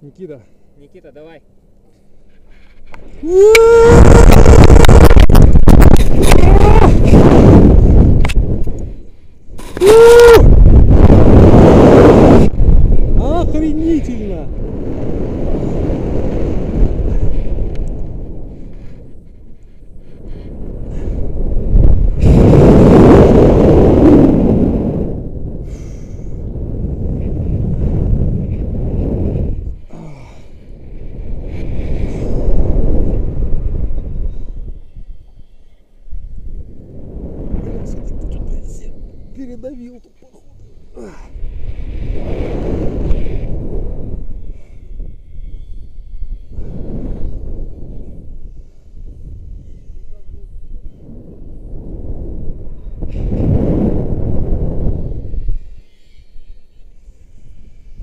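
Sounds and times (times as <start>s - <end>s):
wind rushing over microphone: 2.1s - 58.0s
person crying out: 3.2s - 4.7s, 6.2s - 7.2s, 9.6s - 10.5s.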